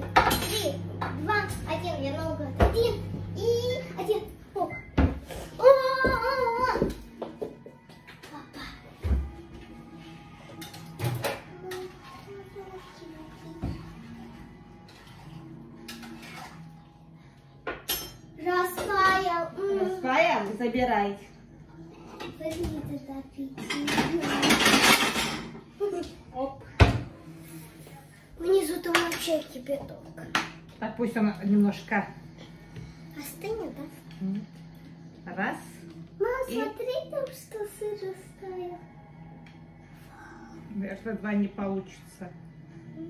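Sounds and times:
plates clattering on counter: 0.0s - 1.2s, 17.6s - 19.0s, 23.6s - 25.7s.

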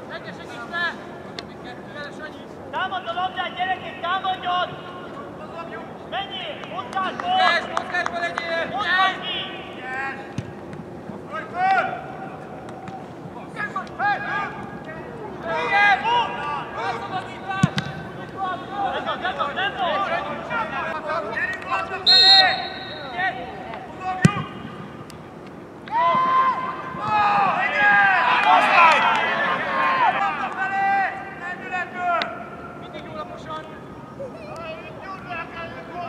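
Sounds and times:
players shouting: 2.8s - 25.0s, 25.7s - 36.0s
short high whistle blast: 22.1s - 23.2s.

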